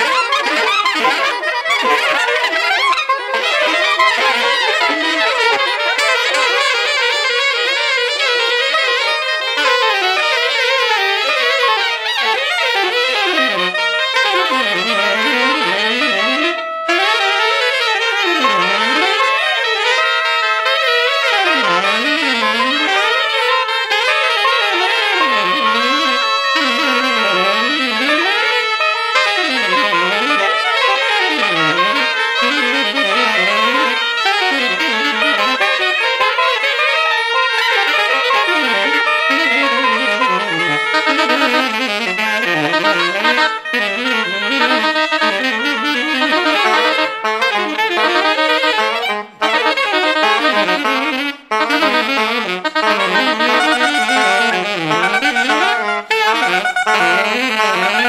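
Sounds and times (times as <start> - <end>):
saxophone quartet playing jazz: 0.0 - 58.0.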